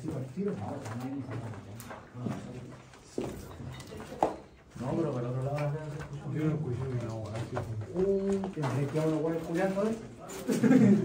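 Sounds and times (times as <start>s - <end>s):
men talking quietly: 0.0s - 11.0s.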